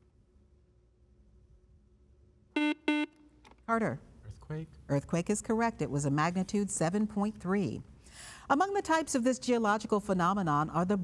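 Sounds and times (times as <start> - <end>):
short electronic beeps: 2.6 - 3.1.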